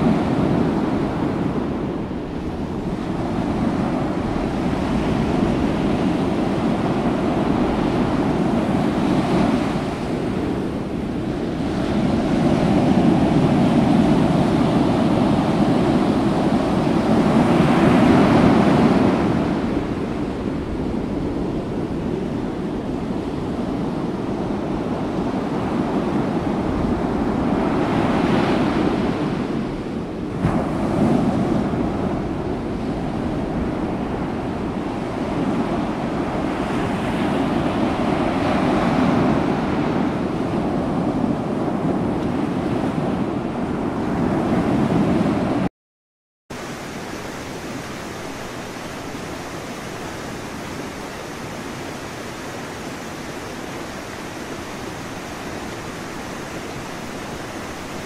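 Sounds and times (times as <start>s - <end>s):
sea wash: 0.0s - 45.7s, 46.5s - 58.0s
wind buffeting microphone: 0.0s - 45.7s.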